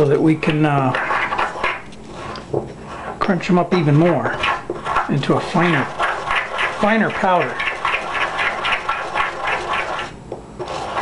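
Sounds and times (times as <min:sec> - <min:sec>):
pestle grinding leaves in mortar: 0:00.1 - 0:02.3, 0:03.7 - 0:11.0.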